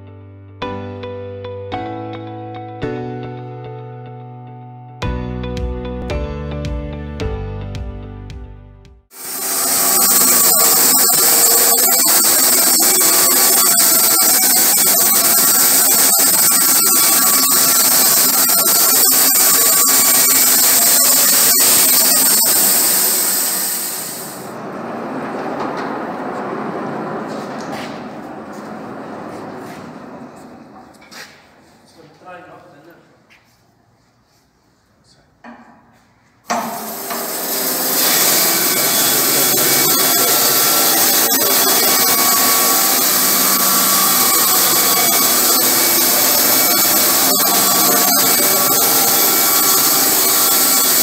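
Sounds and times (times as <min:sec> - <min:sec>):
electric motor hum: 0:09.1 - 0:27.3, 0:36.6 - 0:51.0
whining tones: 0:09.1 - 0:31.1, 0:36.5 - 0:51.0
band saw blade cutting wood: 0:09.2 - 0:24.5, 0:36.5 - 0:51.0.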